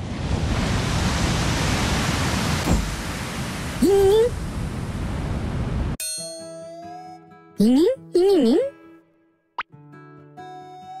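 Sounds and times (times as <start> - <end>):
sea waves rushing onto shore: 0.0 - 6.0.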